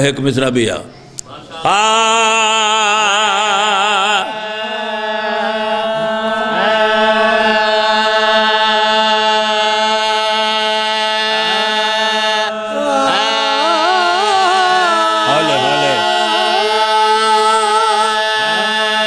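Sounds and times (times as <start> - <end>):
men chanting: 1.3 - 19.0.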